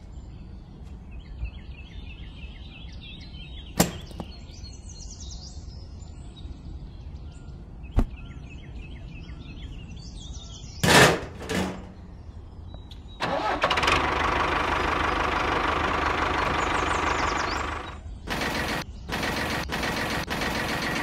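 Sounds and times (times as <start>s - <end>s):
faint bird chirps: 0.0s - 10.8s, 16.4s - 19.8s
small motor humming: 13.6s - 21.0s.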